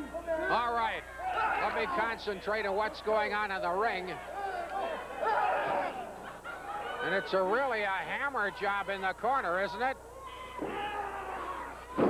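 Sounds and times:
arena crowd shouting: 0.0 - 12.0.

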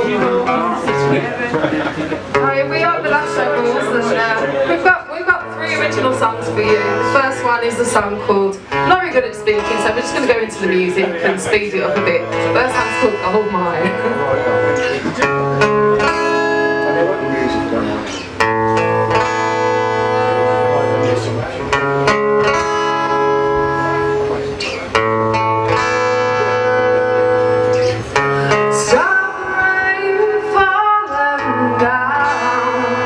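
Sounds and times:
acoustic guitar chords: 0.0 - 33.0
woman singing: 28.5 - 33.0.

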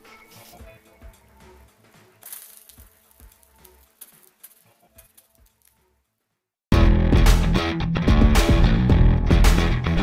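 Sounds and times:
faint background music: 0.0 - 6.3.

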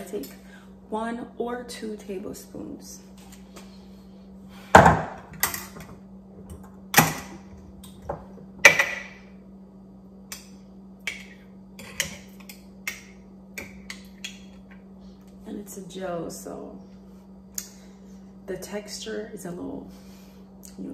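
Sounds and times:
faint steady hum: 0.0 - 20.9.

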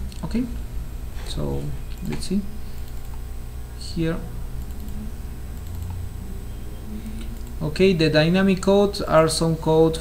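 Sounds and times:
steady low hum: 0.0 - 10.0
computer mouse clicking: 1.9 - 3.2, 4.6 - 6.0, 7.1 - 7.6.

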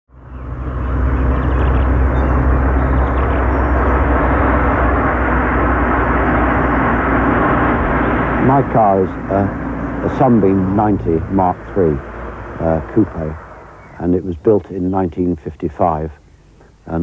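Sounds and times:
car engine running: 0.1 - 16.8
road noise: 0.1 - 17.0.

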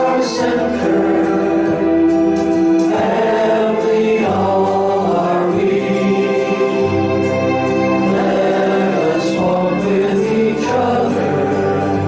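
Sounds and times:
congregation singing a cappella: 0.0 - 12.0.

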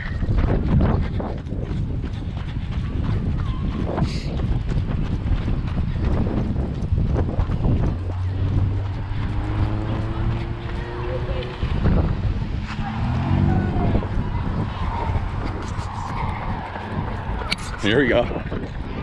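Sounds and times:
footsteps on dirt and gravel: 0.0 - 19.0
wind noise on microphone: 0.0 - 19.0
car engine humming: 6.4 - 18.2.

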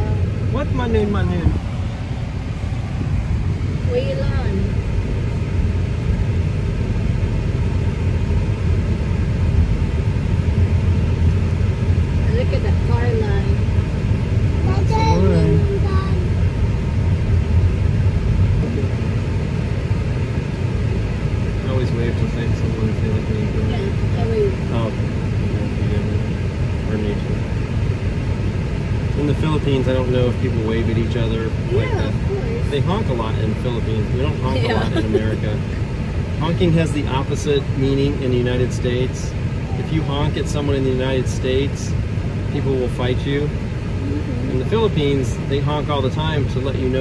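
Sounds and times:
car cabin road rumble: 0.0 - 47.0.

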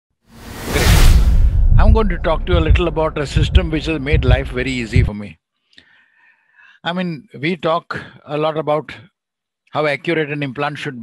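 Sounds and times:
whoosh transition effect: 0.3 - 5.0
man speaking: 1.8 - 5.4.

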